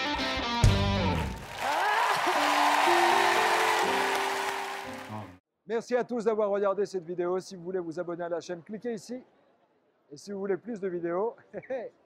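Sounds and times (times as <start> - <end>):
audience applauding and cheering: 1.0 - 5.4.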